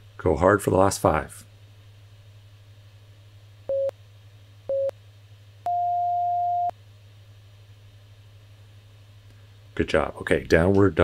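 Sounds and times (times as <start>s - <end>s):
electronic timer beeps: 3.7s - 3.9s, 4.7s - 4.9s, 5.7s - 6.7s.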